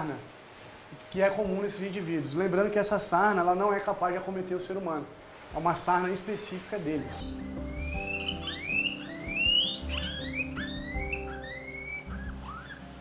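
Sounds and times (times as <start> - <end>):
soft background music: 1.1 - 13.0
guinea pig wheeking: 7.0 - 13.0.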